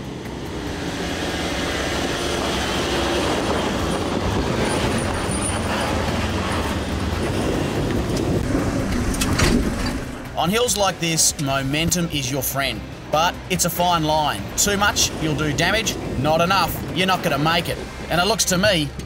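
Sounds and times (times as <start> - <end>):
off-road engine working hard: 0.0 - 19.0
vehicle clattering over ruts: 1.9 - 10.9.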